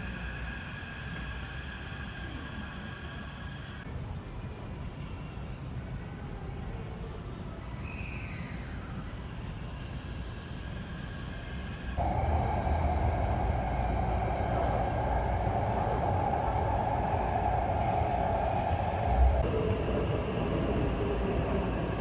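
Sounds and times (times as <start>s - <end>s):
train motors and wheels droning: 0.0s - 7.5s, 8.7s - 22.0s.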